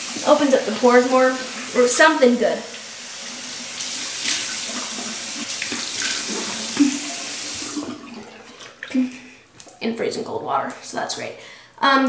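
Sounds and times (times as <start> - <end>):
sink tap running: 0.0 - 9.1
water splashing on face: 3.6 - 9.3.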